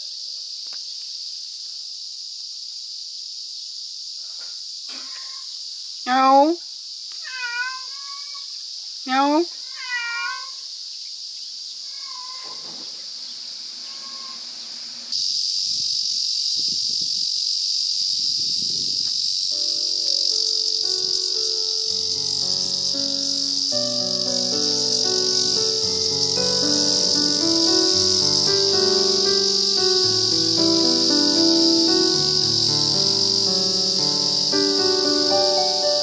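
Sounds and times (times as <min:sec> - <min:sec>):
high-pitched insect drone: 0:00.0 - 0:36.0
cat meowing: 0:07.2 - 0:08.5, 0:09.6 - 0:10.6, 0:11.8 - 0:12.7, 0:13.8 - 0:14.5
background music with keyboard: 0:19.6 - 0:36.0.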